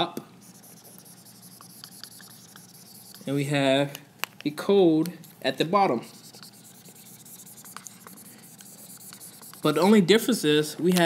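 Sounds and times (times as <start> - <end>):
marker scribbling on whiteboard: 0.4 - 3.4, 5.9 - 10.1.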